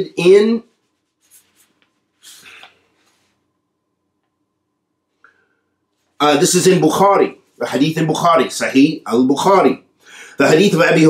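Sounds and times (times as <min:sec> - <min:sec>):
paper rustling: 0:00.7 - 0:03.4.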